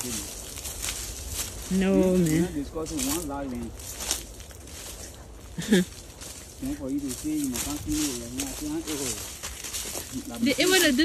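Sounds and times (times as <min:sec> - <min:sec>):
man talking: 0:00.0 - 0:00.4, 0:01.9 - 0:03.8, 0:06.6 - 0:09.3, 0:10.0 - 0:10.7
brush rustling and crackling: 0:00.0 - 0:11.0.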